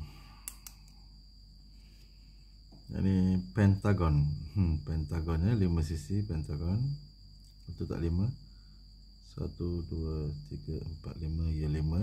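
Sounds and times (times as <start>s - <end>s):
pen clicks: 0.4s - 1.0s.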